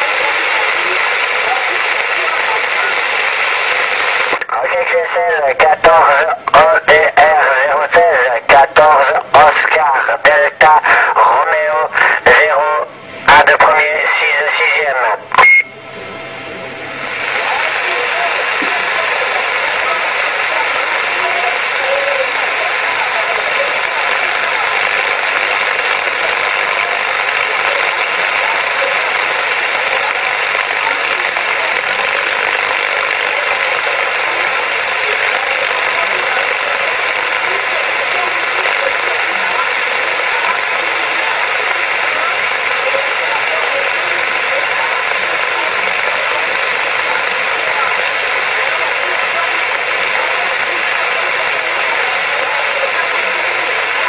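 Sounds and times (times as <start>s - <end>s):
short radio burst: 0.0s - 15.7s
faint distant radio voice: 0.0s - 16.2s, 16.9s - 54.0s
radio static hiss: 0.0s - 54.0s.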